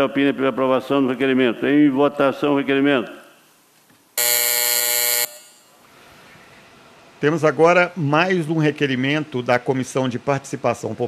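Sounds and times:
voting buzzer tone: 4.2s - 5.7s.

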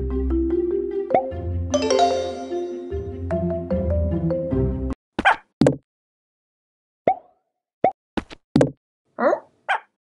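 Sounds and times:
mobile game background music: 0.0s - 5.0s.

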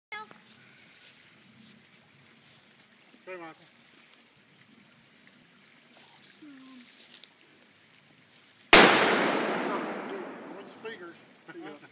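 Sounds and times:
rifle shot with echo: 8.8s - 11.0s.

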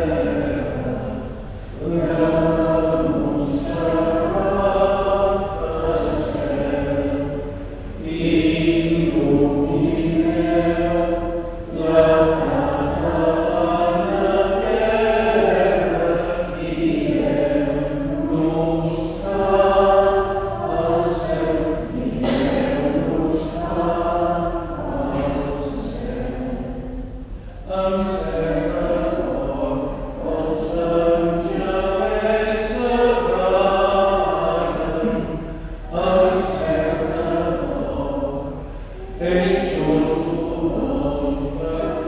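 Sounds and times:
choir singing a sacred chant: 0.0s - 42.0s.

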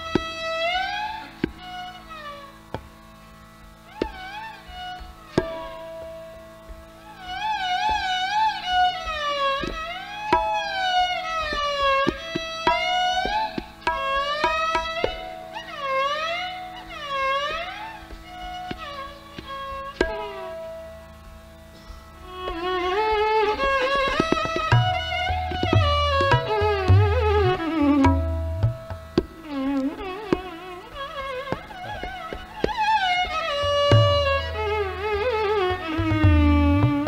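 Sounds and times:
tabla strokes: 0.0s - 37.0s
violin gliding notes: 0.0s - 37.0s.

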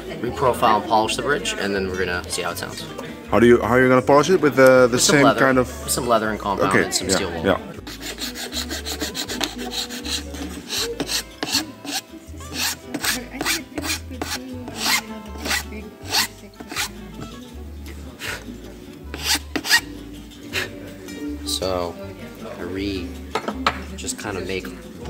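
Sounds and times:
metal file rasping on guitar bridge: 7.8s - 16.9s, 19.1s - 19.9s.

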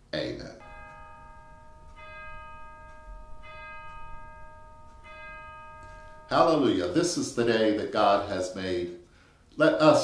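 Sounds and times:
bell strikes ringing: 0.6s - 8.2s.

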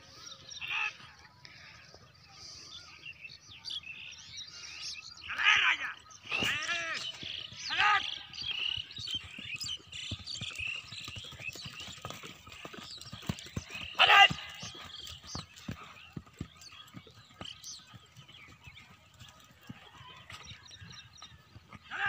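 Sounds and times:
birds chirping: 0.0s - 22.0s
people calling and shouting: 5.2s - 8.8s, 13.5s - 15.5s
galloping horse hooves: 6.1s - 22.0s.

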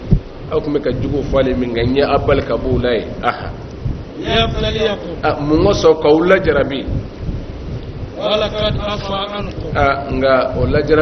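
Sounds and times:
low rumbling background noise: 0.0s - 11.0s
man talking: 0.5s - 3.6s, 4.2s - 7.0s, 8.2s - 11.0s.

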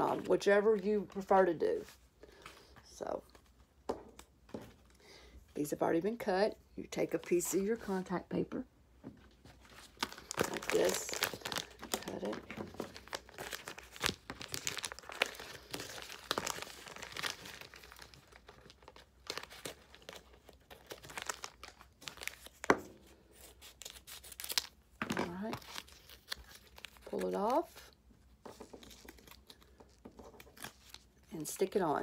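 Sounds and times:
contact paper crinkling: 9.3s - 32.0s.

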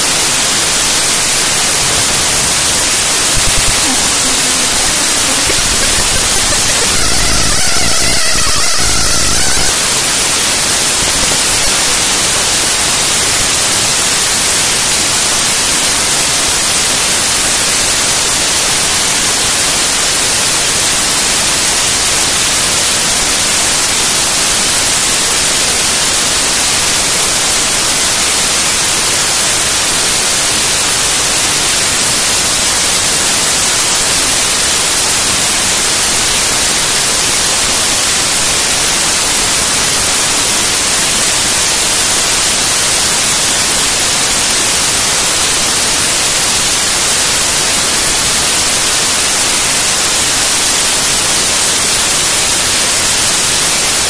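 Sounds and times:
loud static-like noise: 0.0s - 54.0s
faint tones: 3.4s - 10.0s.

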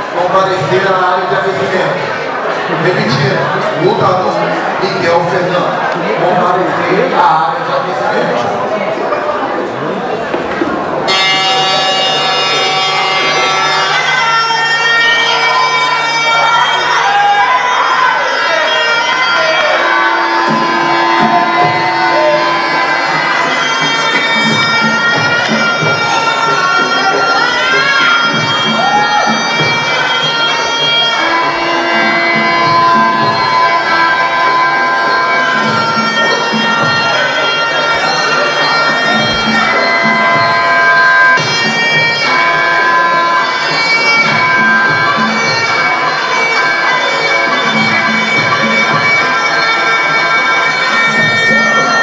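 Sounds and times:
reedy oboe melody: 11.0s - 52.0s.

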